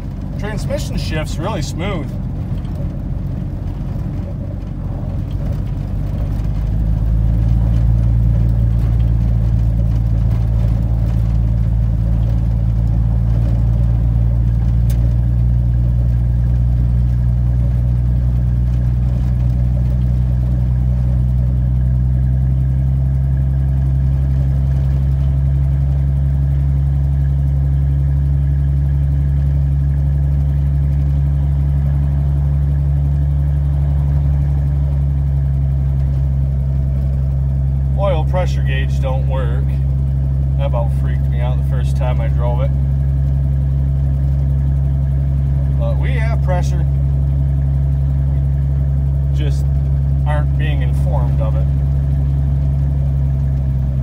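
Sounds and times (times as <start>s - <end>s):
truck engine running: 0.0s - 54.0s.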